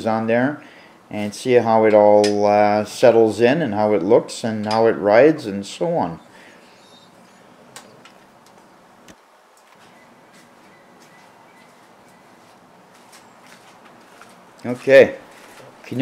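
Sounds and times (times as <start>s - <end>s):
faint steady background noise: 0.0s - 16.0s.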